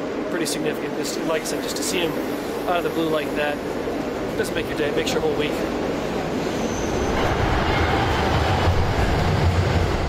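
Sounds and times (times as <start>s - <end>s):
subway train rumble: 0.0s - 10.0s.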